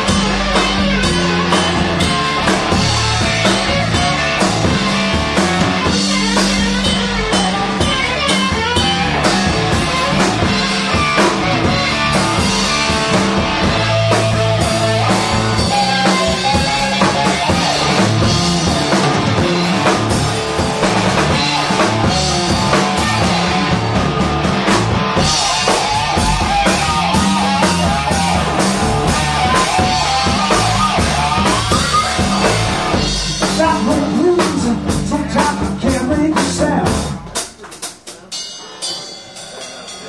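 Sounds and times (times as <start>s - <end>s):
electric bass: 0.0s - 37.3s
electric guitar: 0.0s - 37.3s
drum kit beat: 0.0s - 40.0s.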